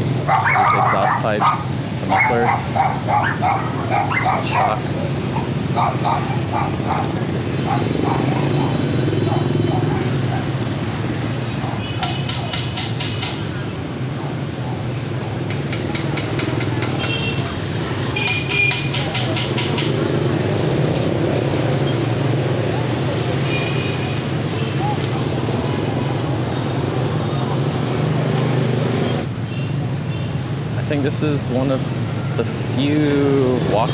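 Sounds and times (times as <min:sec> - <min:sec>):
motorbike and scooter traffic: 0:00.0 - 0:33.9.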